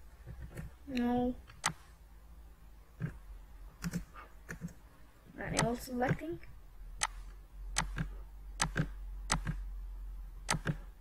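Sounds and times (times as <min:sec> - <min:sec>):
low steady hum: 0:00.0 - 0:11.0
computer mouse clicks: 0:00.3 - 0:01.8, 0:03.8 - 0:04.8, 0:05.5 - 0:06.2, 0:07.0 - 0:09.6, 0:10.5 - 0:10.9.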